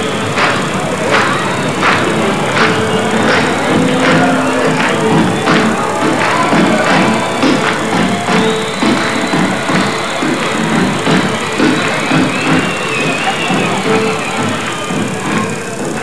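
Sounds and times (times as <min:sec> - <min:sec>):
drum strikes: 0:00.0 - 0:16.0
live folk band playing: 0:01.2 - 0:14.5.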